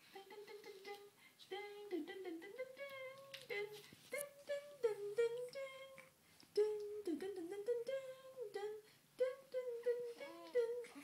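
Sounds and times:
person humming a tune: 0:00.0 - 0:11.0.

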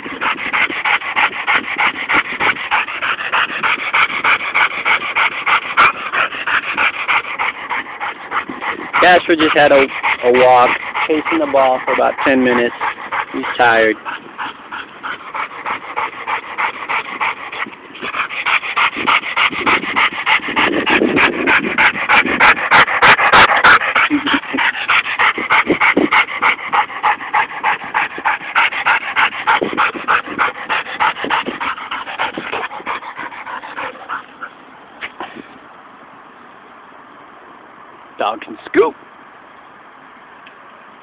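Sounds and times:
dog panting: 0:00.0 - 0:35.5.

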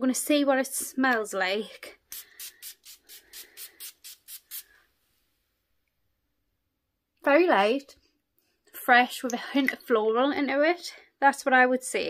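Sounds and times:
perfume atomizer hissing puffs: 0:02.0 - 0:04.9.

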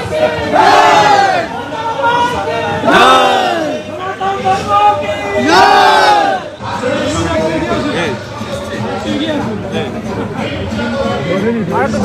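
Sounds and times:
crowd noise: 0:00.0 - 0:12.0
men shouting a slogan together: 0:00.3 - 0:06.5.

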